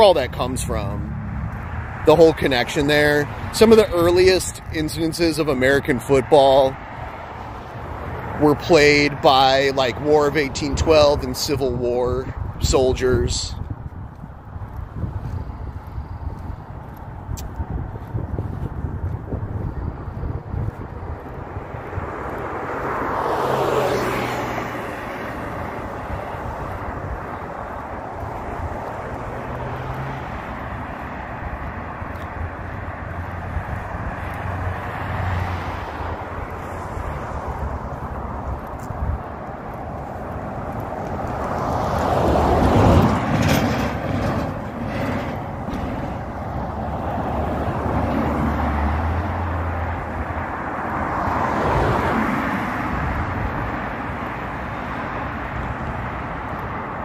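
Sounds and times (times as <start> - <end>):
outdoor background noise: 0.0 - 57.0
vehicles passing: 0.0 - 57.0.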